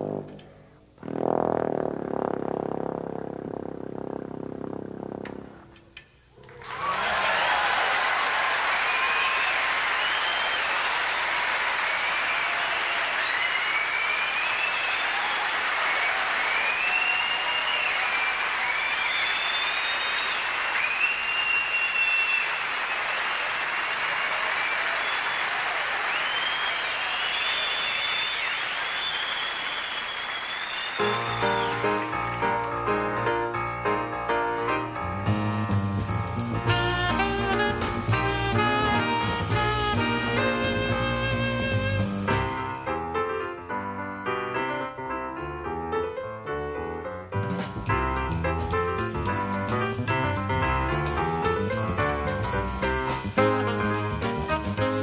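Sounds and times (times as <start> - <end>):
audience applauding: 6.4 - 33.0
audience whistling: 6.4 - 33.0, 36.6 - 42.5
solo grand piano: 31.0 - 37.4, 42.3 - 55.0
jazz band playing: 31.0 - 44.6, 47.3 - 55.0.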